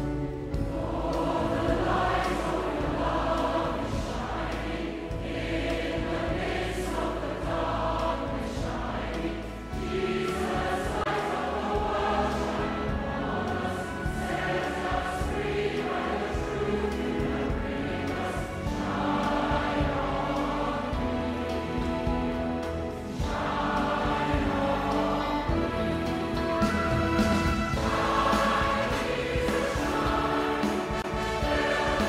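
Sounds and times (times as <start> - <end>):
choir singing: 0.0 - 32.0.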